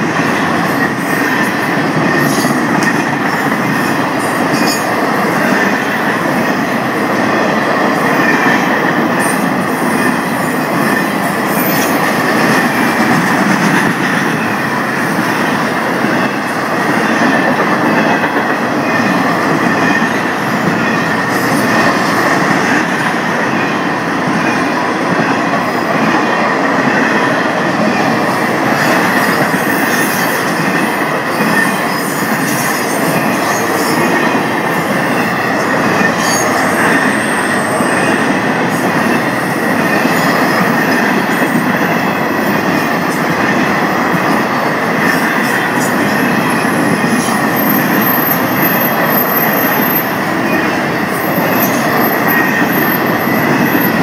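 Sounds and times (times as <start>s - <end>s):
freight train wheels rumbling on rail: 0.0s - 54.0s.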